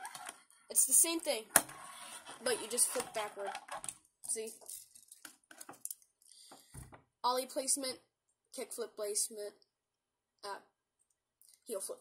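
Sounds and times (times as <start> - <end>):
soft thump on wooden table: 6.7 - 7.0.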